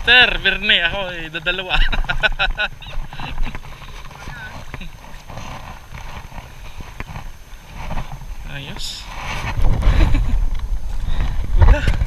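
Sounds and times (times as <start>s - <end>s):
water sloshing around wading legs: 0.0s - 12.0s.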